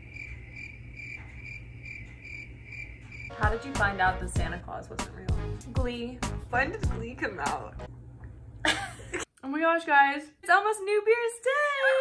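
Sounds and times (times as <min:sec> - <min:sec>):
cricket chirping: 0:00.0 - 0:03.3.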